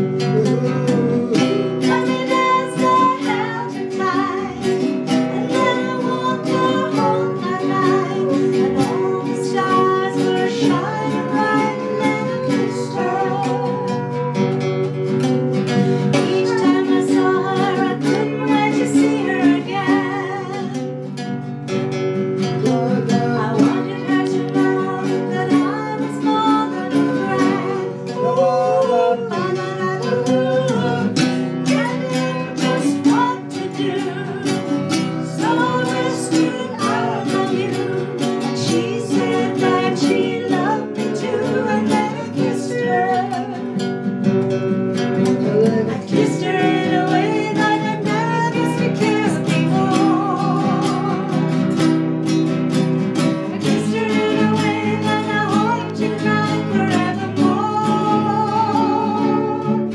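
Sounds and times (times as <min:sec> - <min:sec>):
woman singing: 0:00.0 - 0:21.6, 0:22.4 - 0:44.3, 0:45.0 - 0:52.1, 0:52.7 - 0:59.9
acoustic guitars strumming: 0:00.0 - 0:59.9.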